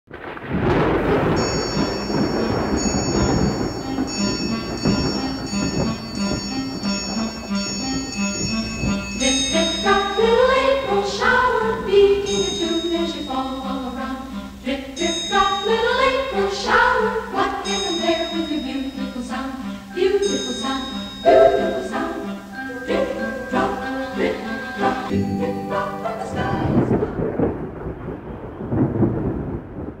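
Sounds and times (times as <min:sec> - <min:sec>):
heavy rain: 0:00.1 - 0:12.6, 0:17.2 - 0:25.2, 0:25.9 - 0:30.0
thunder rumbling: 0:00.1 - 0:12.6, 0:26.2 - 0:30.0
high steady tones: 0:01.4 - 0:26.9.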